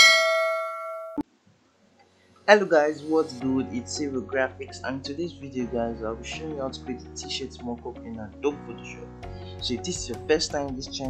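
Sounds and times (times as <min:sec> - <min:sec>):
notification bell ding: 0:00.0 - 0:01.2.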